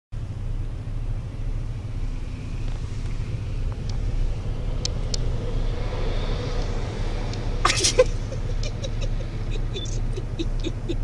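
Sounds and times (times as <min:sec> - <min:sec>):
low rumble: 0:00.2 - 0:11.0
faint sharp ticks: 0:04.8 - 0:05.3.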